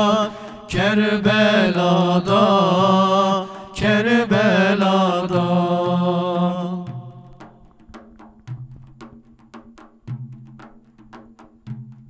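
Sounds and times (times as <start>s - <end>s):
men singing in unison: 0.0s - 7.4s.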